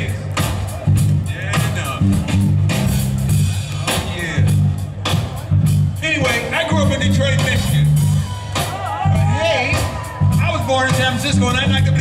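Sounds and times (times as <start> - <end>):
electric bass line: 0.0 - 12.0.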